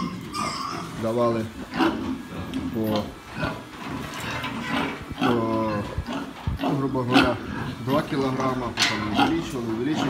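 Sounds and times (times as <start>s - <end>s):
pig grunting: 0.0s - 10.0s.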